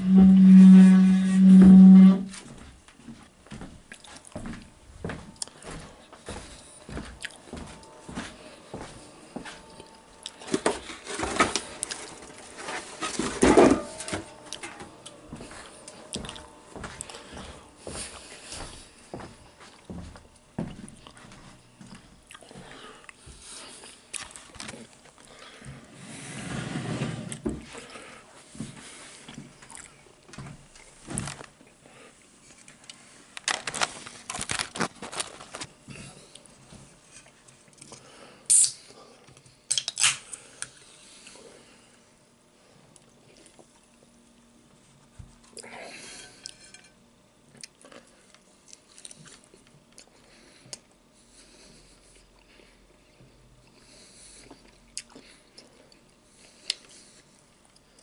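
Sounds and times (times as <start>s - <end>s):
short steady hum: 0.0s - 2.5s
chewing crunchy food: 6.6s - 8.0s, 22.3s - 25.3s, 53.6s - 57.0s.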